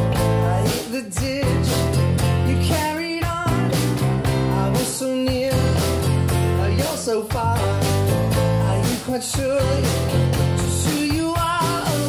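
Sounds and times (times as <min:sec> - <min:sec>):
drums: 0:00.0 - 0:12.0
electric bass: 0:00.0 - 0:12.0
live pop-rock band: 0:00.0 - 0:12.0.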